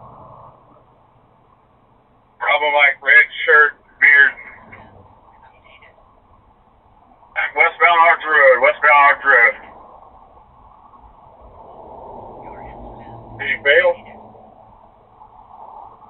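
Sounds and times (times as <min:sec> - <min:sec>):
faint low hum: 0:00.0 - 0:16.0
voice over police radio: 0:02.4 - 0:05.9, 0:07.4 - 0:09.7, 0:12.4 - 0:14.2
radio hiss: 0:02.4 - 0:11.5, 0:12.4 - 0:14.2.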